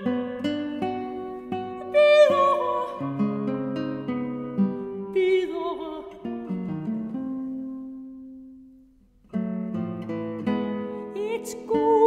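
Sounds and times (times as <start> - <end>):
classical guitar playing: 0.0 - 12.0.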